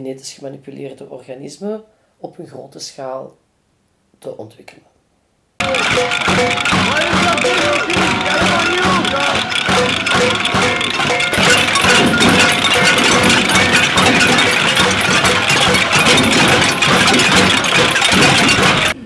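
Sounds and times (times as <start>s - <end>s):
crowd beating pots and pans: 5.6s - 19.0s.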